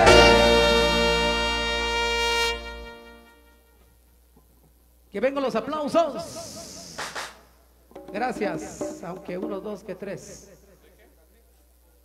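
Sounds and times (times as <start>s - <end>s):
deep bass: 0.0s - 2.9s
horn section holding a chord: 0.0s - 3.8s.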